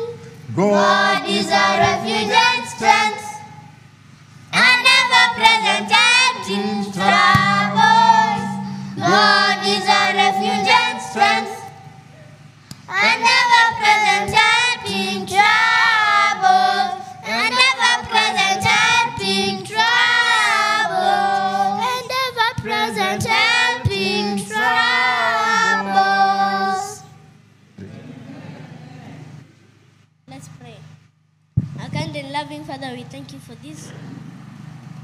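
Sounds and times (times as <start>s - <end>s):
children singing into microphones: 0.0s - 3.9s, 4.6s - 12.2s, 12.8s - 27.2s.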